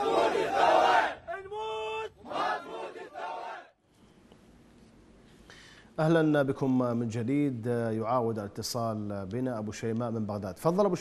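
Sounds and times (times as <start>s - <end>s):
crowd of men chanting: 0.0s - 3.8s.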